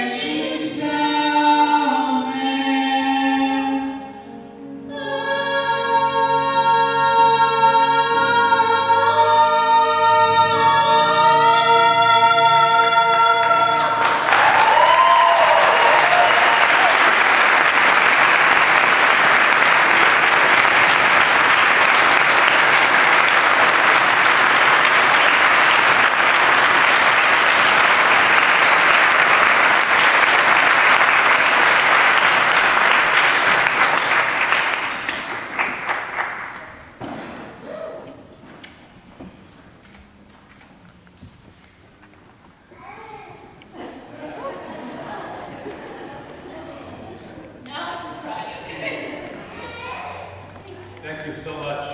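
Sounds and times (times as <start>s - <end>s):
male and female vocal duet: 0.0s - 15.5s
congregation applauding: 13.8s - 37.0s.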